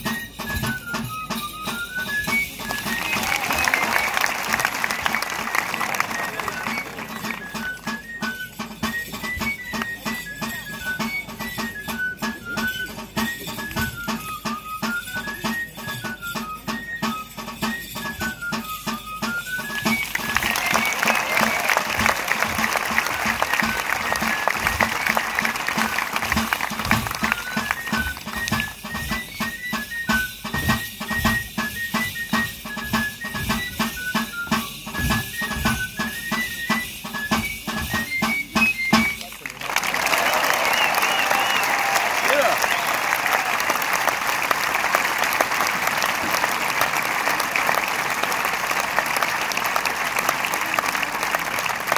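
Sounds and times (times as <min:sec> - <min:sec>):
drum beats: 0:00.0 - 0:51.9
high flute melody: 0:00.0 - 0:51.9
crowd voices: 0:02.3 - 0:08.3, 0:19.6 - 0:28.6, 0:38.3 - 0:51.9
applause: 0:02.7 - 0:07.8, 0:19.8 - 0:28.7, 0:39.2 - 0:51.9.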